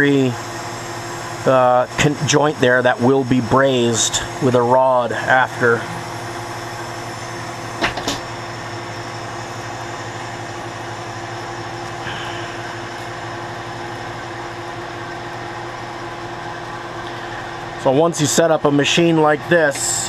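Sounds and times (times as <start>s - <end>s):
lathe motor humming: 0.0s - 20.0s.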